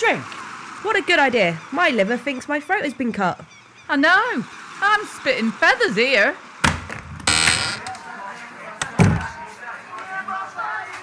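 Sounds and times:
heavy door thump: 0:06.6 - 0:07.9, 0:08.9 - 0:09.3
murmur of voices: 0:07.6 - 0:11.0.

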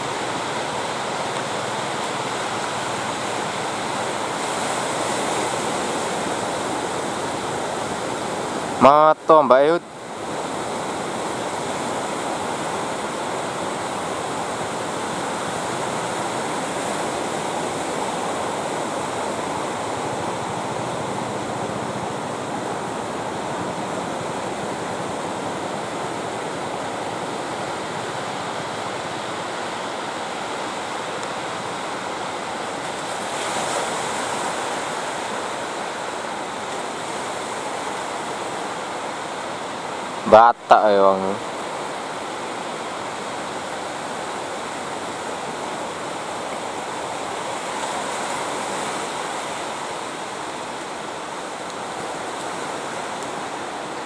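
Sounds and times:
ocean waves breaking on beach: 0:00.0 - 0:54.0.

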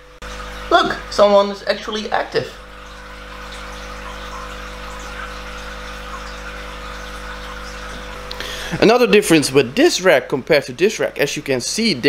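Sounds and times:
aquarium pump humming: 0:00.0 - 0:12.0.

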